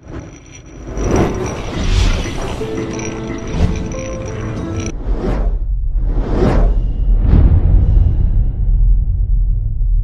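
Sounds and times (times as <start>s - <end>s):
cinematic whoosh: 0.0s - 10.0s
deep low rumble: 0.2s - 10.0s.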